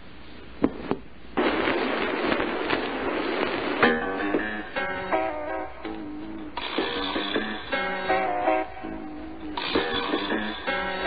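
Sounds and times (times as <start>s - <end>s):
plucked guitar notes: 3.9s - 11.0s.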